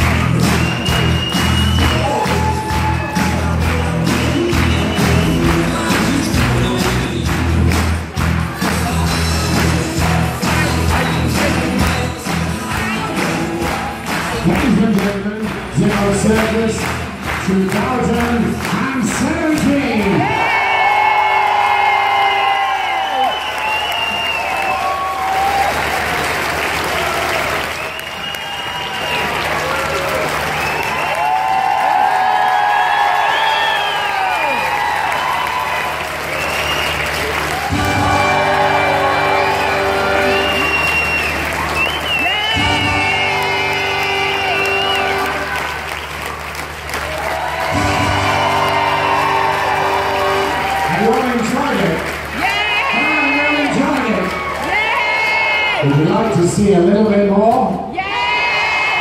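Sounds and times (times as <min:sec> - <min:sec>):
show music with singing: 0:00.0 - 0:20.4, 0:37.6 - 0:41.5, 0:42.2 - 0:45.8, 0:47.6 - 0:51.0
audience applauding: 0:00.0 - 0:56.8.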